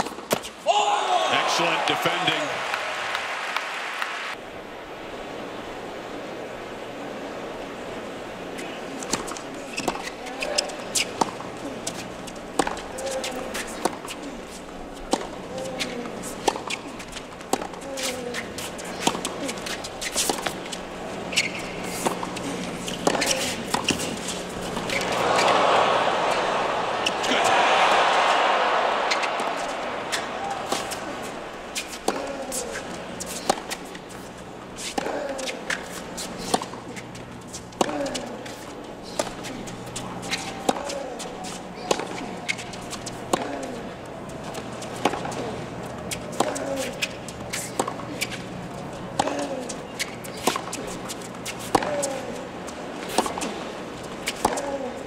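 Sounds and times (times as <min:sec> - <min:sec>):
crowd cheering: 0:00.6 - 0:04.4, 0:24.5 - 0:33.0
racket striking tennis ball: 0:21.4 - 0:34.2, 0:34.8 - 0:36.8, 0:40.3 - 0:41.0, 0:41.8 - 0:43.7, 0:46.3 - 0:48.4, 0:54.3 - 0:54.8.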